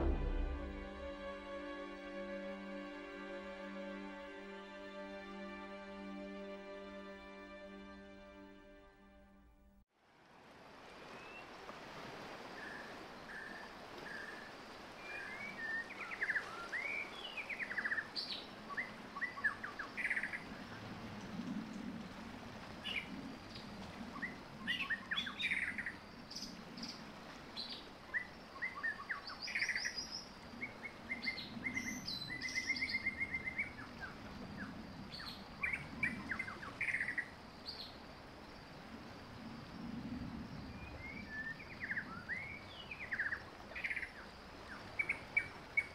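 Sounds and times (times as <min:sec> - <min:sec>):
birds chirping and trilling: 0:15.1 - 0:20.8, 0:22.8 - 0:38.0, 0:40.5 - 0:45.9.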